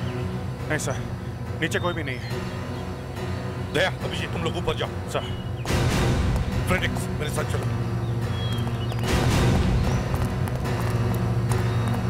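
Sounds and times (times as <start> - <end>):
low music drone: 0.0 - 12.0
regular knocking beat: 5.6 - 12.0.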